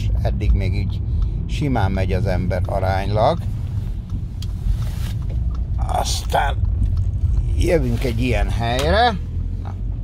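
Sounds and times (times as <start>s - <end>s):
car engine and tyres rumble: 0.0s - 10.0s.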